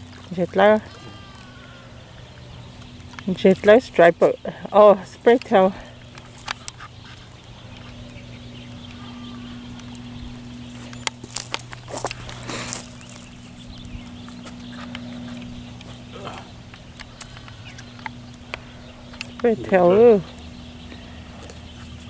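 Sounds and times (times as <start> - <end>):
low hum: 0.0 - 22.0
hands handling fish and line: 5.4 - 8.0, 9.7 - 19.4.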